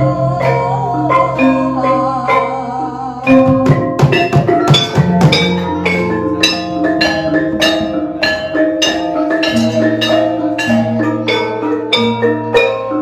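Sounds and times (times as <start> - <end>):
metallophones struck with mallets: 0.0 - 13.0.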